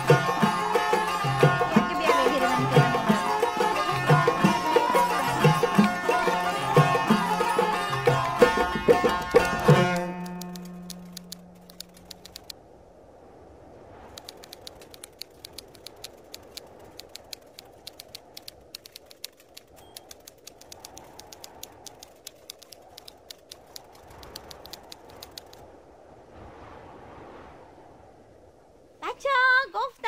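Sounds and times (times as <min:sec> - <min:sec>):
keyboard keystroke clicks: 0:09.2 - 0:12.5, 0:14.2 - 0:25.6.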